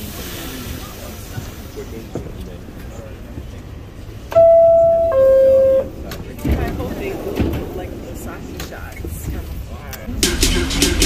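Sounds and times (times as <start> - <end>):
two-tone electronic door chime: 4.3 - 5.9.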